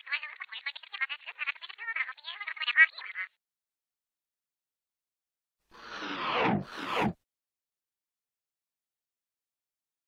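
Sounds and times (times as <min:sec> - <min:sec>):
squeaky quack-like squawks: 0:00.0 - 0:03.4.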